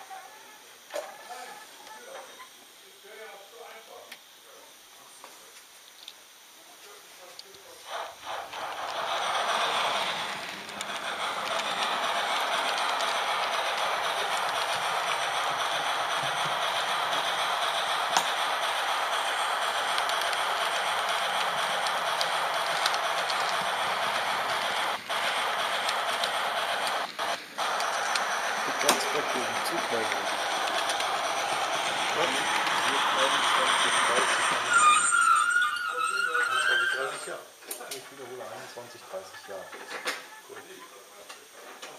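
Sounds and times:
model train wheels rattling: 0:07.3 - 0:40.2
model train whine stopping: 0:07.4 - 0:40.8.

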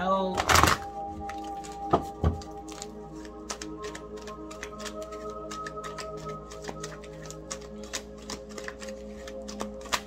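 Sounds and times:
soft background music: 0:00.0 - 0:10.0
cards being shuffled: 0:00.4 - 0:10.0.

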